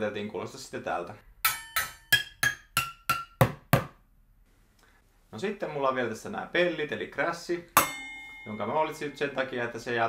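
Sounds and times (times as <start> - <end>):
drumsticks striking pots: 1.4 - 3.9, 7.8 - 8.7.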